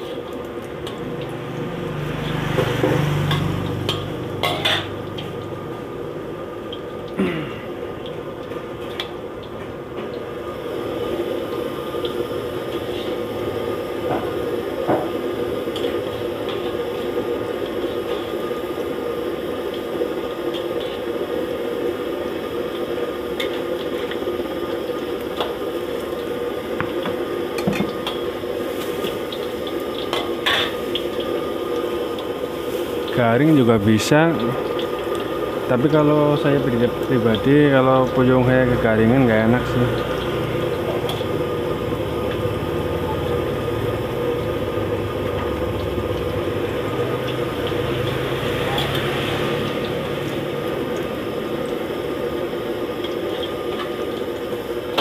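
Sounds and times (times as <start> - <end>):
oil sizzling: 0.0 - 55.0
metal spatula scraping wok: 3.3 - 5.3.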